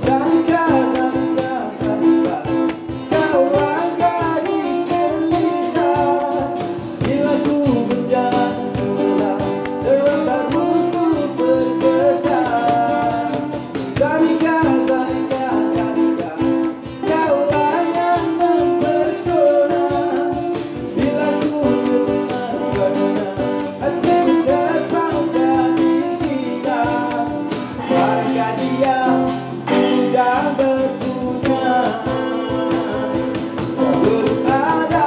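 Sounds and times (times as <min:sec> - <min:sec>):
acoustic guitar strumming: 0:00.0 - 0:35.0
person singing: 0:00.0 - 0:35.0
tambourine: 0:00.0 - 0:35.0.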